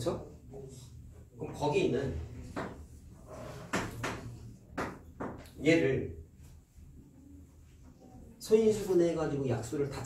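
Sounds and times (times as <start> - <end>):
chalk tapping on blackboard: 2.4 - 3.0, 3.6 - 5.4.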